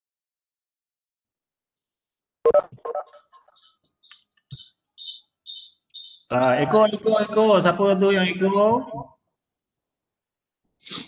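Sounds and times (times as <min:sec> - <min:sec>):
short electronic beeps: 0:04.6 - 0:07.0.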